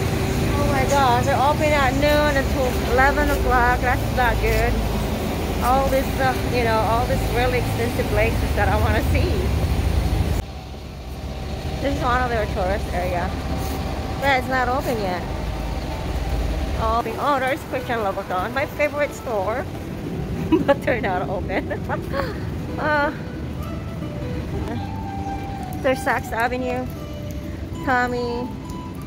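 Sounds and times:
low rumbling street noise: 0.0 - 29.0
faint background music: 22.5 - 29.0.

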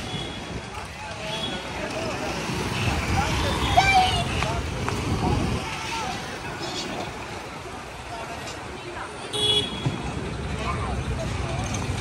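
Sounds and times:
passers-by talking: 0.0 - 12.0.

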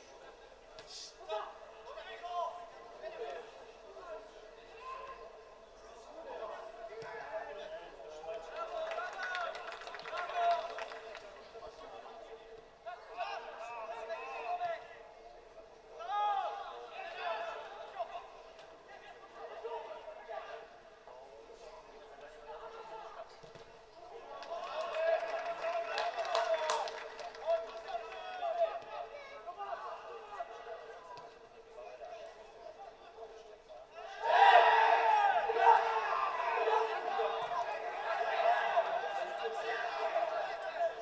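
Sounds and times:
players shouting and calling: 12.8 - 21.0, 22.2 - 41.0
men shouting and calling: 34.0 - 41.0.

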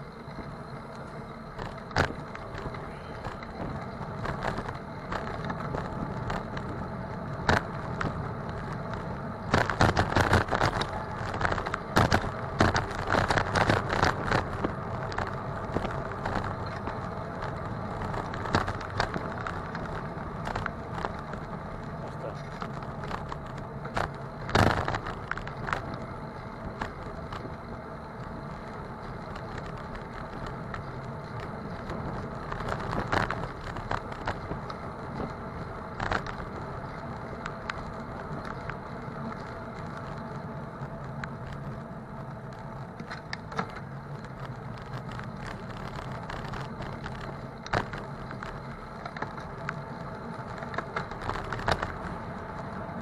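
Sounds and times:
bicycle knocks and rattles: 0.0 - 53.0
road and traffic noise: 0.0 - 53.0.

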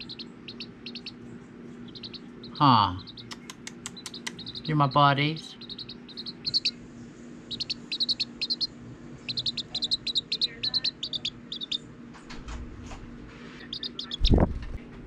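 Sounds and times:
chick peeping: 0.0 - 11.9, 13.4 - 14.7.

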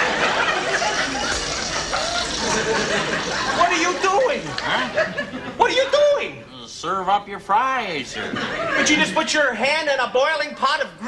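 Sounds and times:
audience laughter: 0.0 - 5.7, 8.2 - 9.2.

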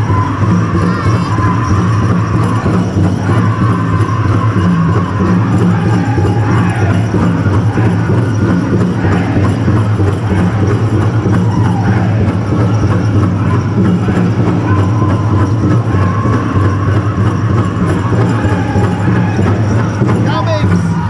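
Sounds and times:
high-pitched voices singing: 0.0 - 20.2
large drum beating fast: 0.0 - 21.0.

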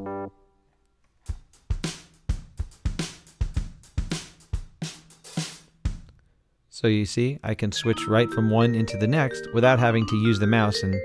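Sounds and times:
drum kit steady beat: 1.2 - 6.1.

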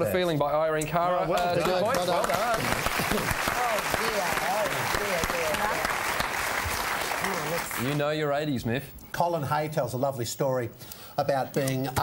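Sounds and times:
studio audience applauding: 1.3 - 8.3.

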